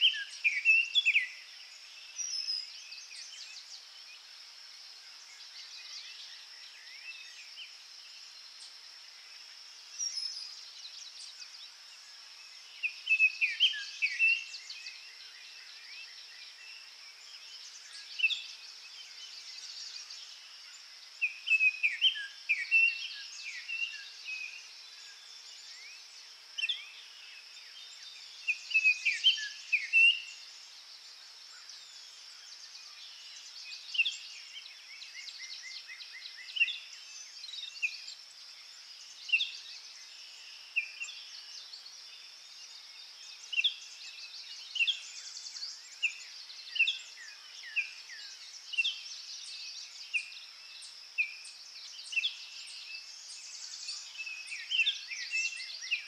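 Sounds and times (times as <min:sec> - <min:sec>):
songbirds singing: 0:00.0 - 0:56.0
steady high-pitched hiss: 0:00.0 - 0:56.0.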